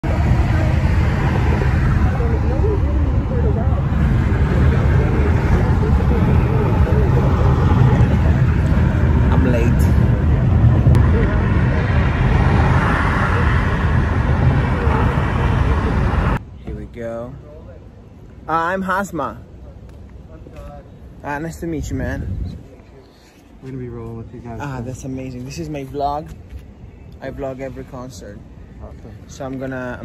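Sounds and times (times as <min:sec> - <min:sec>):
car cabin road and engine rumble: 0:00.0 - 0:18.0.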